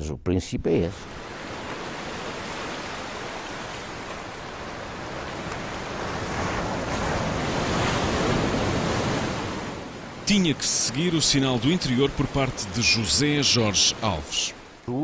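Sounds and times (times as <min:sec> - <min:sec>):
waves breaking: 0:01.0 - 0:15.0.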